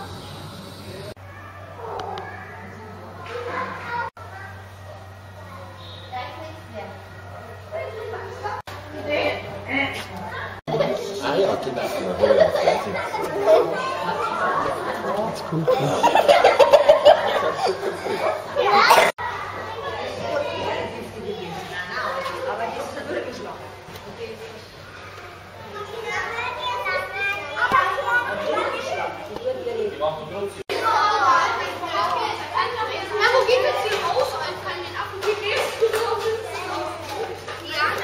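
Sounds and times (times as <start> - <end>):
onlookers chattering: 0.0 - 38.0
children's excited voices: 1.2 - 9.1, 9.7 - 23.4, 24.8 - 29.6, 30.7 - 38.0.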